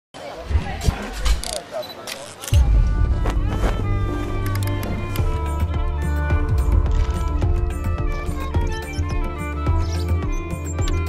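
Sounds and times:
people talking: 0:00.2 - 0:02.7
dull thuds: 0:02.6 - 0:07.2.

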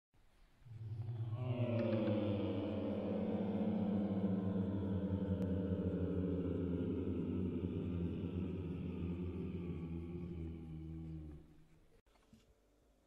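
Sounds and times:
low ringing musical drone: 0:00.7 - 0:11.4.

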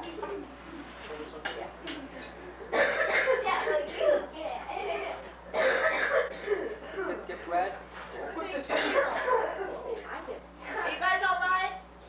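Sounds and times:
murmur of conversation: 0:00.0 - 0:12.0
tableware clinking: 0:01.0 - 0:02.4, 0:08.7 - 0:09.1.

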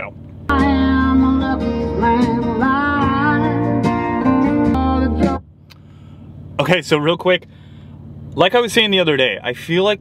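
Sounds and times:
deep bass: 0:00.0 - 0:07.7
song on car stereo: 0:00.5 - 0:05.8.

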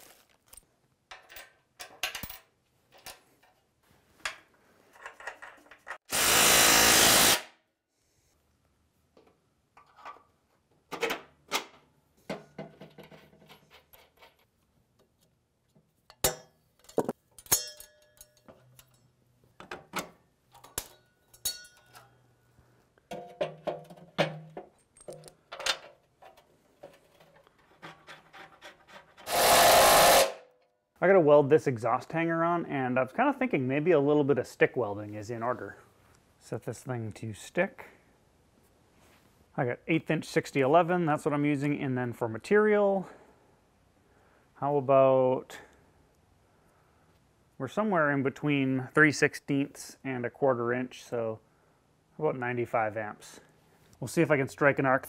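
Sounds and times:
power tool driving bolts: 0:06.0 - 0:07.5, 0:29.2 - 0:30.4
metallic clinks of bolts: 0:16.1 - 0:19.2, 0:20.5 - 0:22.2, 0:23.1 - 0:25.9.

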